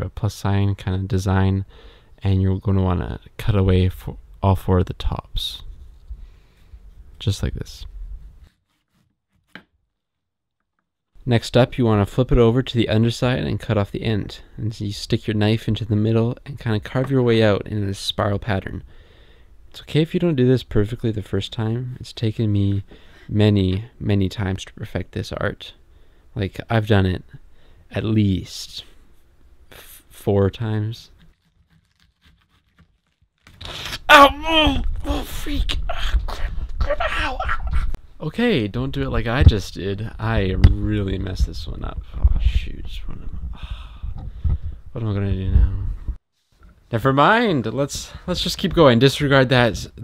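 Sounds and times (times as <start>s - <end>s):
knife slicing fruit rind: 31.1s - 33.6s.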